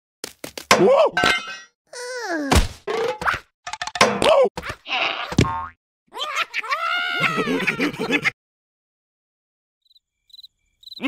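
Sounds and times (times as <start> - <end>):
cartoon squeals and gibberish cries: 1.9 - 2.6, 4.8 - 5.4, 6.1 - 8.3
cartoon knocks and thuds: 2.5 - 4.7.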